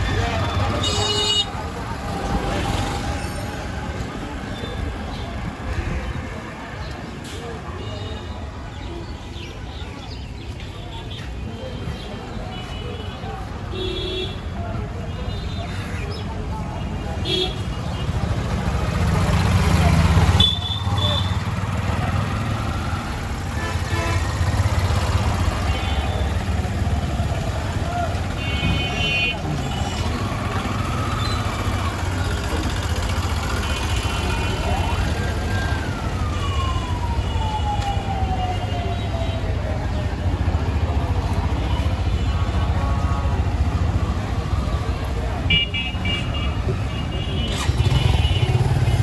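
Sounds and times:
auto-rickshaw and motorbike engines: 0.0 - 49.0
hubbub of voices: 0.0 - 49.0.

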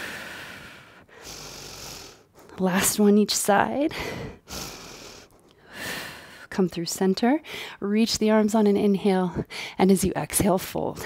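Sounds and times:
woman breathing: 0.0 - 2.7, 3.8 - 6.5, 7.4 - 7.8, 9.4 - 9.8.

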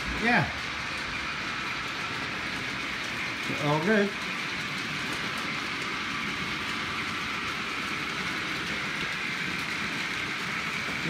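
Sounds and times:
model trains humming and rattling: 0.0 - 11.0.

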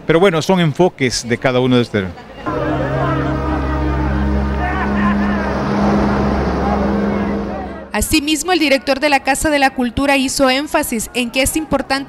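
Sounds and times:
voices: 2.4 - 9.8
low sustained chords: 2.5 - 8.6.

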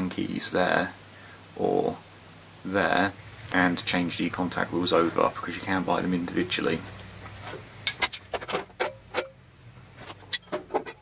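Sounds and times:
metal parts clicking and clinking: 7.9 - 9.4, 10.1 - 11.0.

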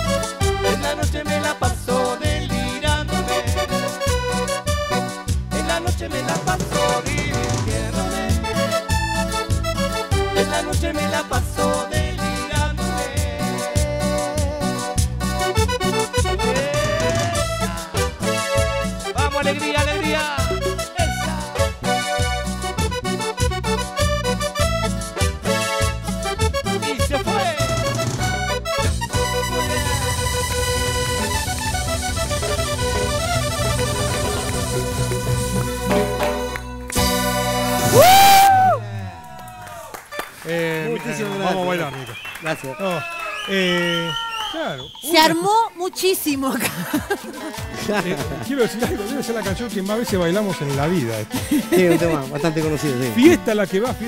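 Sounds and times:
live band instrumental dance music: 0.0 - 54.0
voices talking and exclaiming: 40.6 - 54.0.

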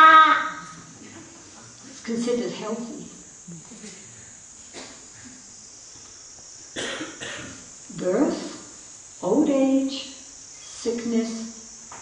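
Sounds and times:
person coughing: 6.8 - 7.6.

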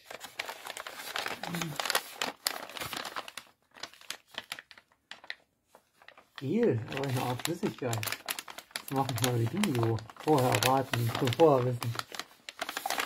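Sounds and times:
wrapping paper crinkling: 0.0 - 13.0.

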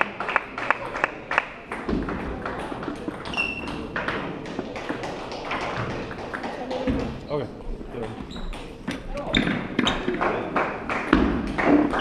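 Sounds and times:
background chatter: 0.0 - 12.0
table tennis balls clicking: 1.7 - 7.1.

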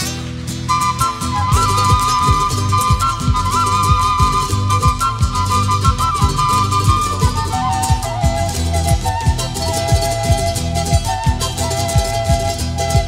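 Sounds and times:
bass: 0.0 - 13.0
flute melody: 0.6 - 13.0.

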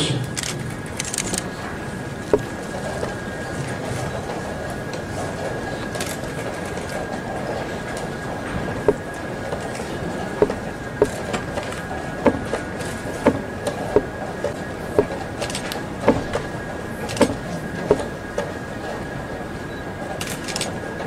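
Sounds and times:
hall hum: 0.0 - 21.0.

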